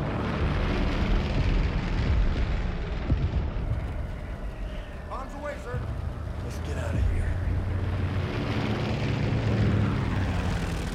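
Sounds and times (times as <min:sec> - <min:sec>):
aircraft engines droning: 0:00.0 - 0:10.9.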